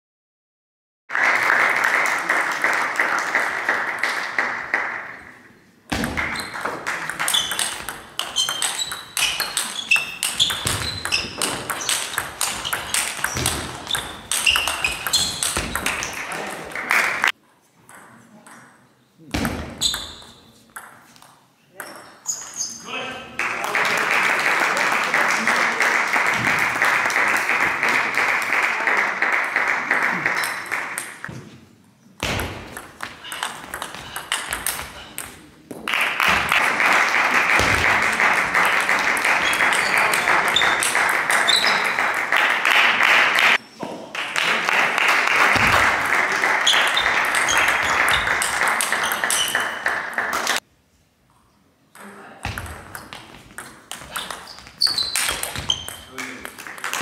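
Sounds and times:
audience applause: 1.1s - 5.2s, 23.4s - 31.0s, 35.9s - 43.6s, 44.2s - 50.6s.

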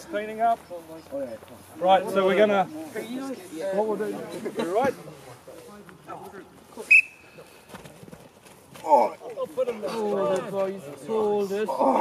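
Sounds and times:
whistle blast: 6.9s - 7.3s.

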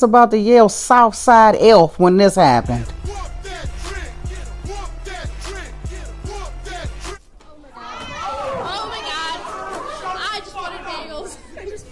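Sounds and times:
high-pitched voices shouting: 7.7s - 11.1s.

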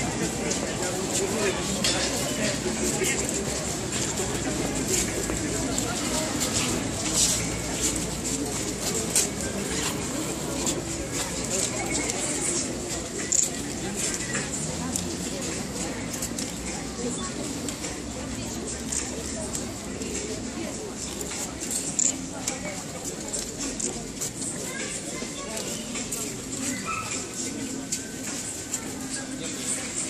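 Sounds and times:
crowd babble: 0.0s - 30.0s.

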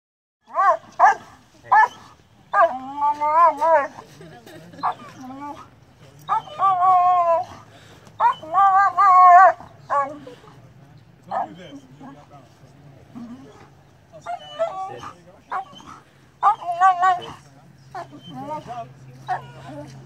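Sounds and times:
dog barking: 0.5s - 2.0s, 2.6s - 2.8s.

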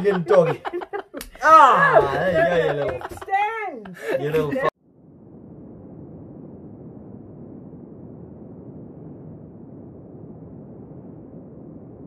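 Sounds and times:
wind over open sea: 4.8s - 12.0s.

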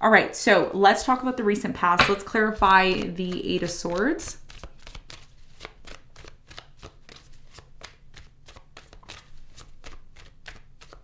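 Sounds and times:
cards being shuffled: 2.6s - 11.0s.

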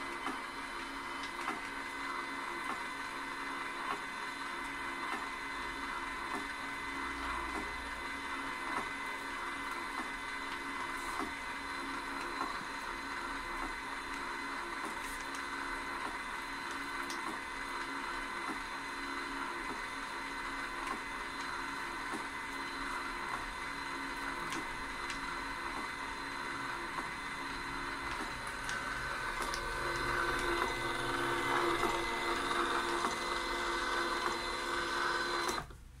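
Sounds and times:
label printer motor whine: 0.0s - 35.8s.

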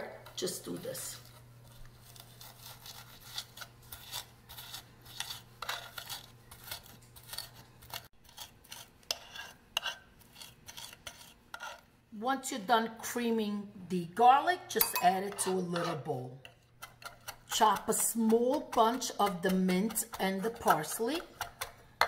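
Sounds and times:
fork scraping on wooden board: 2.0s - 11.9s, 15.3s - 17.8s.

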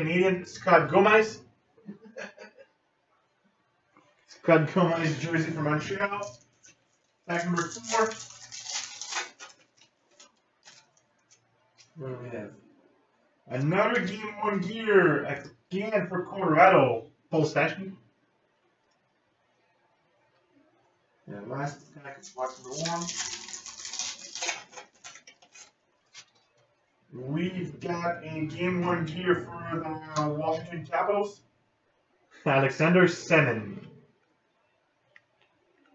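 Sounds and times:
cards rustling: 4.9s - 12.0s, 22.2s - 26.6s
foil wrapper crinkling: 6.0s - 12.0s, 22.2s - 26.7s.

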